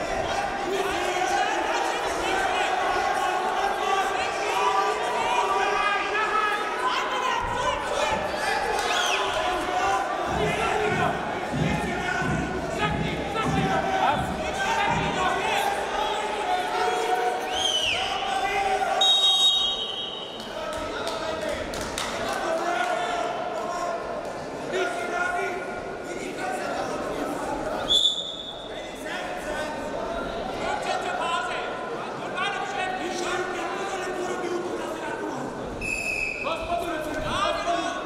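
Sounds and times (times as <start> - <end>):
voices in hall: 0.0 - 38.0
referee whistle: 19.0 - 20.4, 27.8 - 28.7, 35.8 - 36.6.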